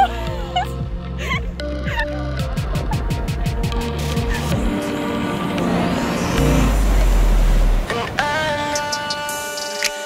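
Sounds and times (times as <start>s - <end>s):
background music with held chords: 0.0s - 10.0s
loud deep rumble: 2.6s - 8.0s
surf washing over rocks: 4.7s - 10.0s.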